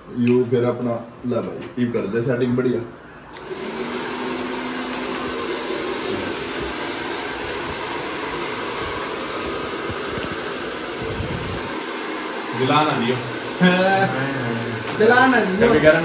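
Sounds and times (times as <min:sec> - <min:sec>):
hair dryer running: 0:03.3 - 0:16.0.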